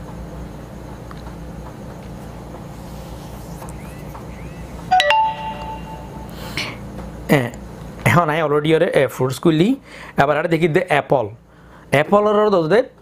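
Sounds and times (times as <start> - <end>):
smartphone chime: 4.9 - 6.4.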